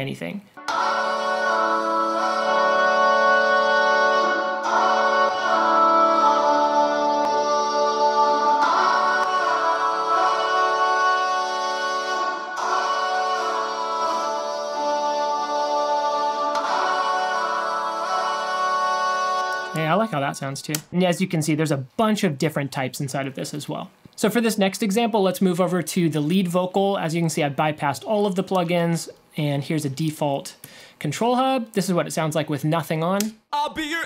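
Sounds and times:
song with held chords: 0:00.5 - 0:19.8
reverberant singing: 0:00.6 - 0:19.8.

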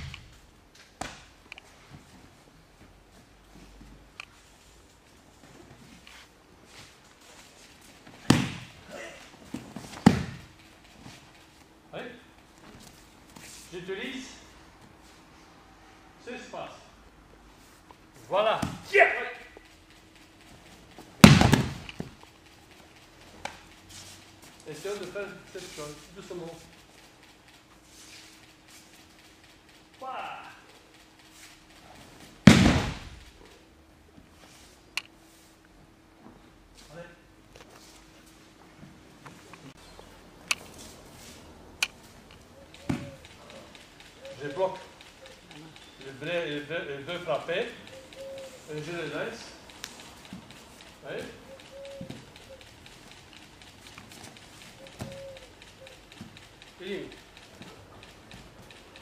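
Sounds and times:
body slamming onto mats: 0:08.2 - 0:08.7, 0:10.0 - 0:10.4, 0:21.2 - 0:21.8, 0:32.5 - 0:33.1
loud knocks echoing in hall: 0:21.2 - 0:21.9, 0:32.5 - 0:33.2.

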